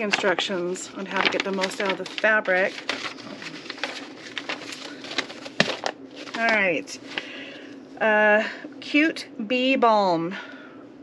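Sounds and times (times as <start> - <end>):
papers rustling: 0.0 - 7.4.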